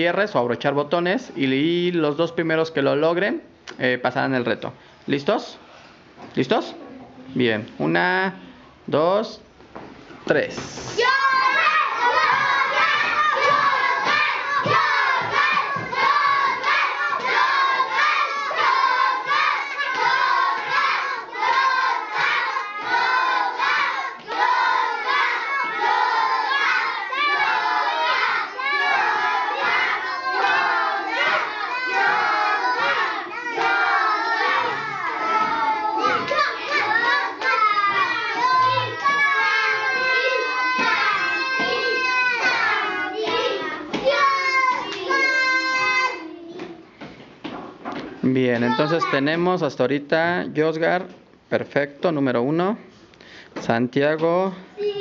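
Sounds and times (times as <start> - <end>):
children shouting excitedly: 10.9 - 46.6.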